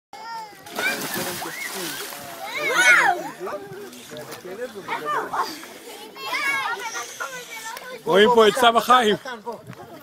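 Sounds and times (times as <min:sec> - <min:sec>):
children's voices: 0:00.2 - 0:03.8, 0:04.8 - 0:09.1
water splashing in a pool: 0:00.2 - 0:10.0.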